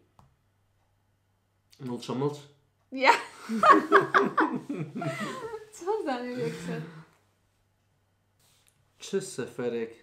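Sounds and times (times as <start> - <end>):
woman laughing: 3.1 - 7.0
man laughing: 3.6 - 5.6
people speaking: 5.0 - 7.0.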